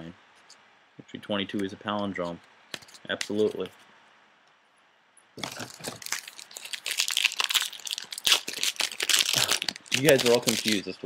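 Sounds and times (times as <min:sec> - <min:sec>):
plastic wrapper crinkling: 0:05.4 - 0:10.9.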